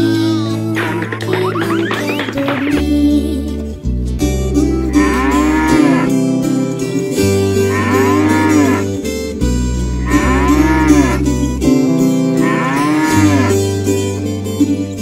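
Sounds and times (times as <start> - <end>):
plucked guitar: 0.0 - 15.0
steady bass: 0.0 - 15.0
bull mooing: 4.9 - 6.4, 7.4 - 9.0, 10.0 - 11.4, 12.3 - 13.8.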